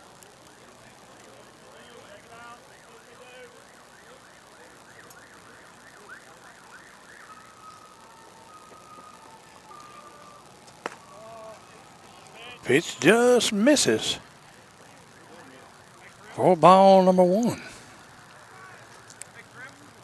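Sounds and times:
distant electronic siren: 0:00.0 - 0:20.0.

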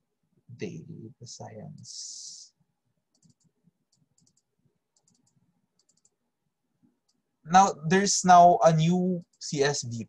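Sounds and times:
computer mouse clicks: 0:03.1 - 0:06.2, 0:06.9 - 0:07.2.

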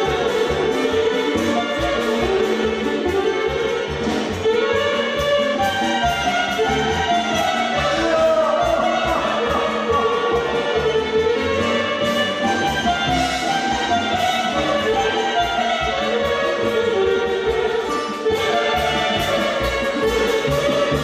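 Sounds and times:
live band music: 0:00.0 - 0:21.0
violin melody: 0:00.0 - 0:21.0.

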